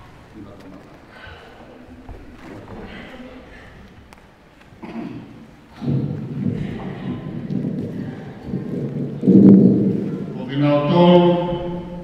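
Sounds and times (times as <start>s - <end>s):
microphone handling rumble: 5.8s - 10.4s.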